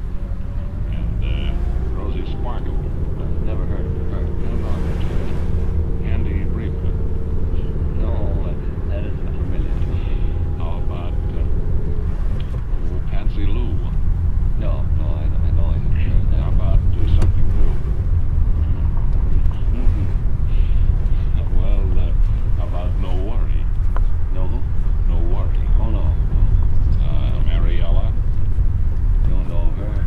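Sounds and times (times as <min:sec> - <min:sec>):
car driving on road: 0:00.0 - 0:30.0
muffled radio voice talking: 0:00.9 - 0:05.2, 0:06.1 - 0:06.9, 0:07.9 - 0:11.5, 0:12.8 - 0:13.9, 0:14.6 - 0:17.7.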